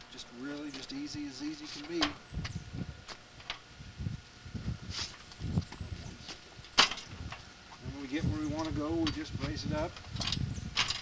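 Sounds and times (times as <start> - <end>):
wheels rumbling over concrete: 0.0 - 3.7, 4.5 - 11.0.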